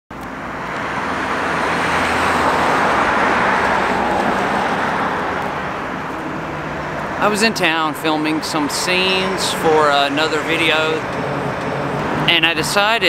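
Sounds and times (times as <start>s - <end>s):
vehicle passing on street: 0.1s - 13.0s.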